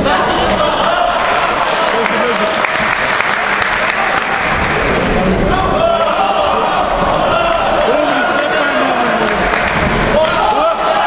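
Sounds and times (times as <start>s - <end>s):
spectators clapping: 0.1s - 5.4s, 7.3s - 11.0s
voices shouting: 5.5s - 9.4s.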